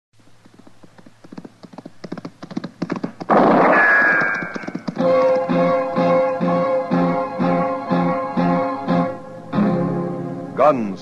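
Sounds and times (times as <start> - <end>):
horse hooves galloping: 0.2 - 6.2.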